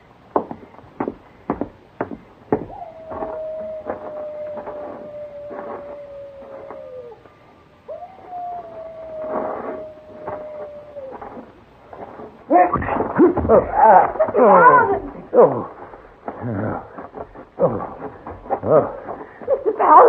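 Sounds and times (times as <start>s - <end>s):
sharp knocks: 0.3s - 4.8s
coyote howls: 2.6s - 11.6s.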